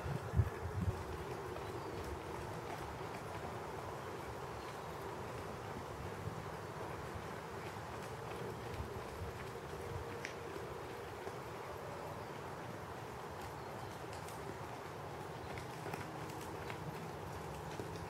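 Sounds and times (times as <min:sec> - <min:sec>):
horse hoofbeats on sand: 0:00.0 - 0:18.0
outdoor background noise: 0:00.0 - 0:18.0.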